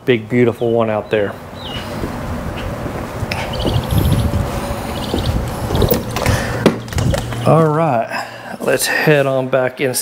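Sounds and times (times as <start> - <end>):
wind rumble on microphone: 1.4 - 7.5
rapid high chirping: 2.6 - 6.2
footsteps and handling: 2.8 - 7.7
glass door opening and shutting: 5.2 - 7.4.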